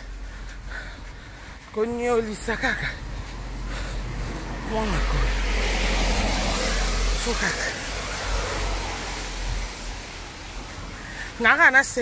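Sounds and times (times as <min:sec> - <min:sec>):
tyre hiss on wet road: 0:05.3 - 0:11.4.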